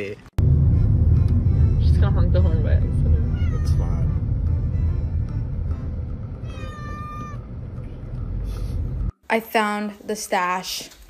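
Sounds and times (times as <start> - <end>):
car cabin rumble: 0.4 - 9.1
cat meowing: 3.2 - 4.2, 6.4 - 7.5.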